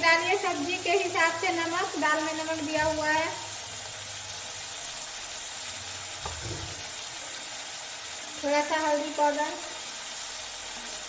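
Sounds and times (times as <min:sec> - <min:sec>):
onion frying sizzle: 0:00.0 - 0:11.0.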